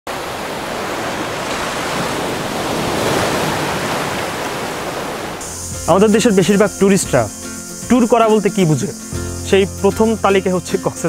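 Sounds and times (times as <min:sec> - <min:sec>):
ocean surf washing on beach: 0:00.1 - 0:07.3
high insect trill: 0:05.4 - 0:11.0
man's voice: 0:05.8 - 0:11.0.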